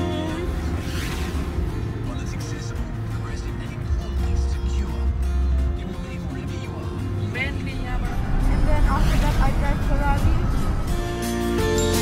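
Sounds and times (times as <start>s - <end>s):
car rumble from inside cabin: 0.0s - 11.2s
background music: 0.0s - 12.0s
voice: 2.0s - 5.0s, 5.8s - 10.6s.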